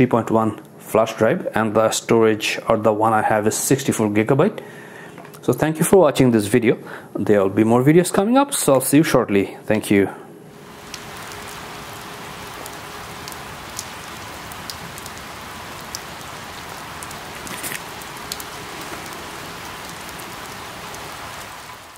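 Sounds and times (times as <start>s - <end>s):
rain falling on leaves: 10.5s - 21.9s
water drips ticking: 10.6s - 21.8s.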